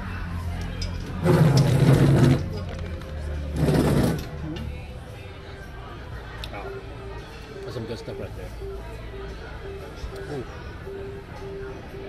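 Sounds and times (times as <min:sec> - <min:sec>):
cafe music: 0:00.0 - 0:12.0.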